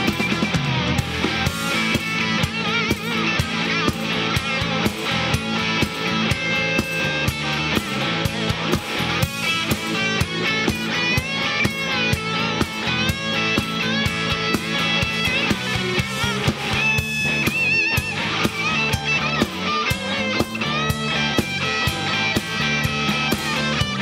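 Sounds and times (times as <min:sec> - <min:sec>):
bass guitar: 0:00.0 - 0:24.0
drum kit: 0:00.0 - 0:24.0
electric guitar lead with bent notes: 0:00.0 - 0:24.0
rhythm guitar: 0:00.0 - 0:24.0.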